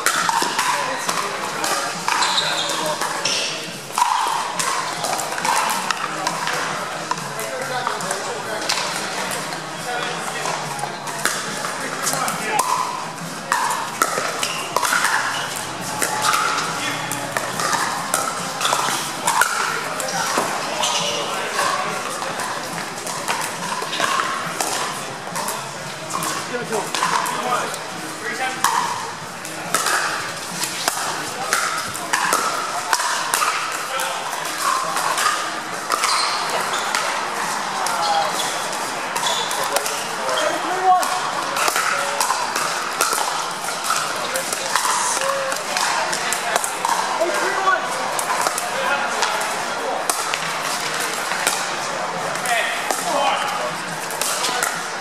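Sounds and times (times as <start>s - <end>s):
chatter of people: 0.0s - 55.0s
paddles striking plastic balls: 0.0s - 55.0s.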